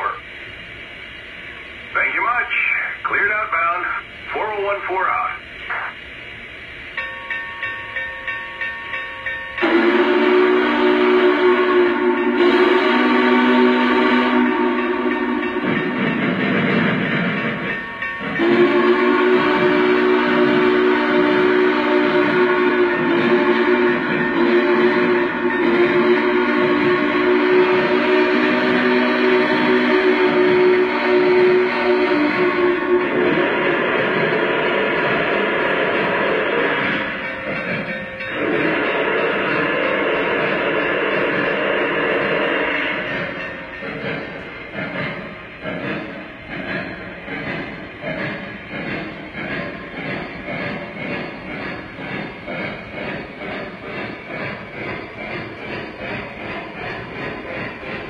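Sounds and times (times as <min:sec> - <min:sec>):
steam locomotive chuffing: 0:00.0 - 0:58.0
chime steam whistle blasts: 0:07.0 - 0:44.4.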